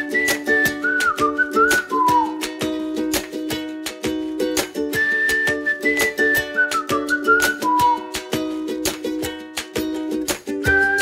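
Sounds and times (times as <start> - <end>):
whistled melody: 0.0 - 9.4, 10.5 - 11.0
plucked ukulele chords: 0.0 - 11.0.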